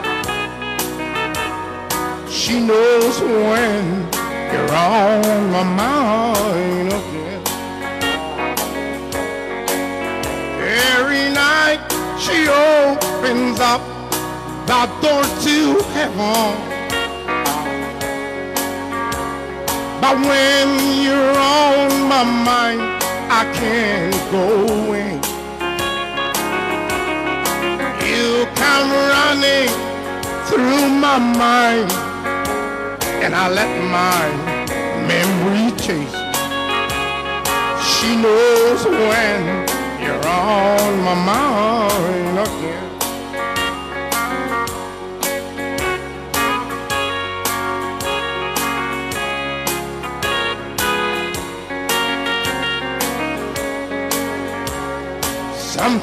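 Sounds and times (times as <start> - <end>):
electric guitar: 0.0 - 56.0
keyboard chords: 0.0 - 56.0
live country band music: 0.0 - 56.0
singer's voice: 1.4 - 18.2, 19.7 - 25.6, 27.4 - 44.7, 50.9 - 56.0.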